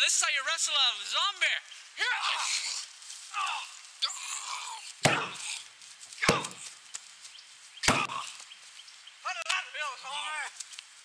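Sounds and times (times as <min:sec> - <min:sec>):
punch smacks: 0:05.1 - 0:05.4, 0:06.3 - 0:06.6, 0:07.9 - 0:08.2.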